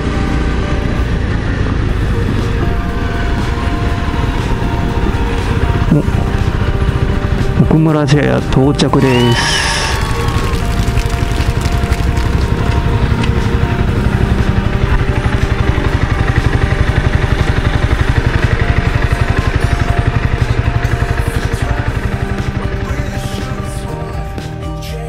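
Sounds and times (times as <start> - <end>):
motorcycle engine at low revs: 0.0 - 8.9, 10.6 - 24.4
background music: 0.0 - 25.0.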